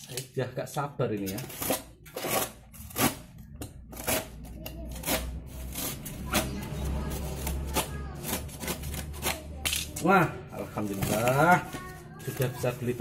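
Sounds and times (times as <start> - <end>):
cardboard rustling and tearing: 3.9 - 9.6, 10.6 - 13.0.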